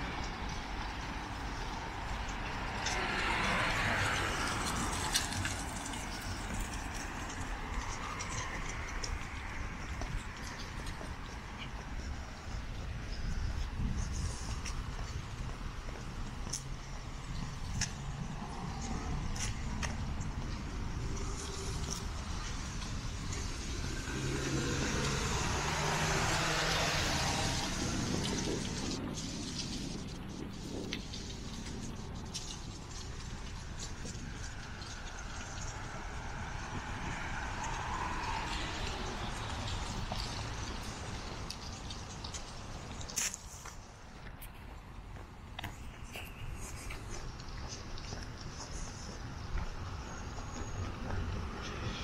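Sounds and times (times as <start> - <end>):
car passing: 0.0 - 52.0
road traffic hum: 0.0 - 52.0.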